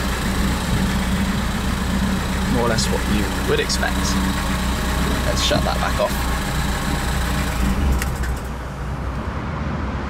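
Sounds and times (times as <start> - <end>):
car engine switching off: 0.0 - 9.3
low steady rumble: 0.0 - 9.5.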